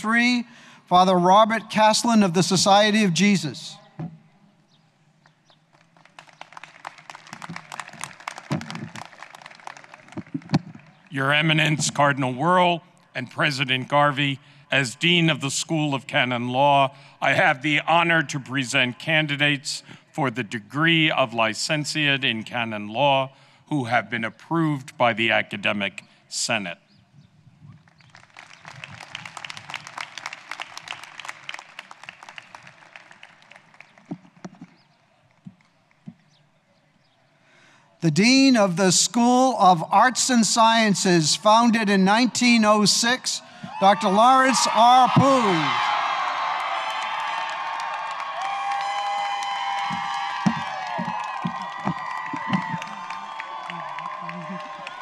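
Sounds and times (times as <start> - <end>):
audience applauding: 5.7 - 11.3, 28.0 - 34.3, 43.7 - 55.0
loud thumps: 49.9 - 52.8.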